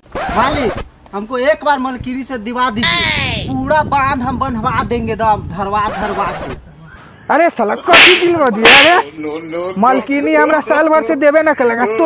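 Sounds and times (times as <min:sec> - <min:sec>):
hand slapping head: 0:07.9 - 0:09.0.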